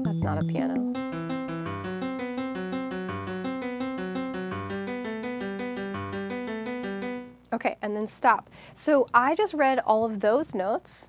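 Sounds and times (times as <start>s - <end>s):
piano playing broken chords: 0.0s - 7.4s.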